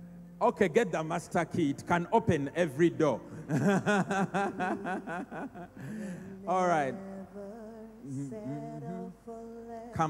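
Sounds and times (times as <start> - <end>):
man laughing into a microphone: 3.5 - 5.9.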